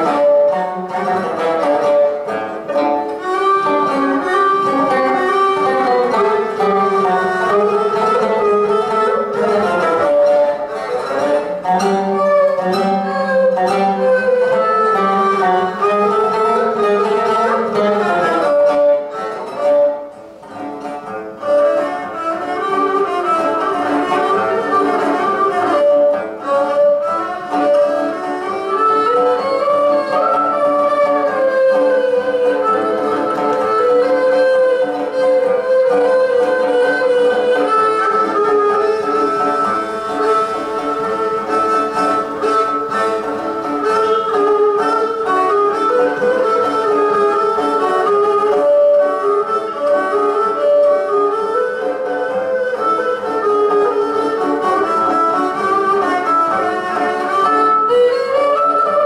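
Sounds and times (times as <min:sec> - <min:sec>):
bowed fiddle melody: 0:00.0 - 0:59.0
plucked lute: 0:00.0 - 0:59.0.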